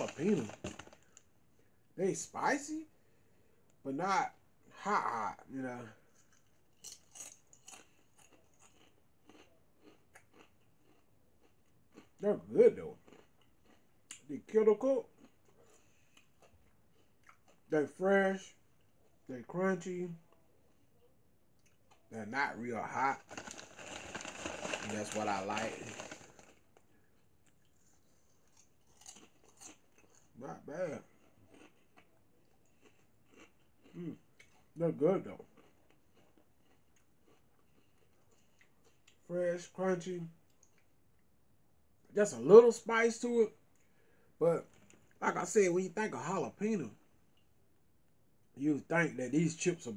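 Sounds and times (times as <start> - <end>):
potato chips being chewed: 0.0 - 1.3, 6.0 - 12.2, 12.9 - 17.7, 21.6 - 34.8, 35.4 - 39.2, 44.6 - 45.2.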